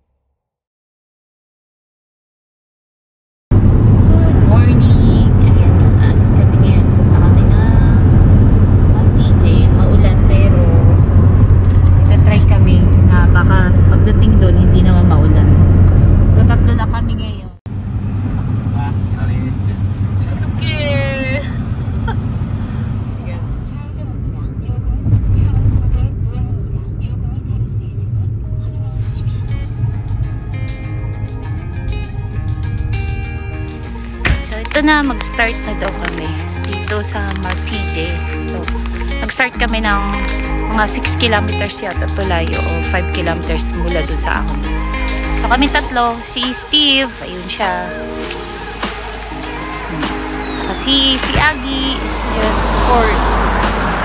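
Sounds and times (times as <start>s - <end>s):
road and wind rumble: 3.5s - 54.0s
road noise inside car cabin: 3.5s - 54.0s.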